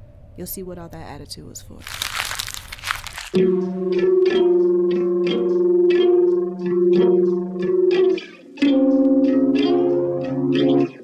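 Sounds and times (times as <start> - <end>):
electric guitar holding low note: 3.4 - 11.0.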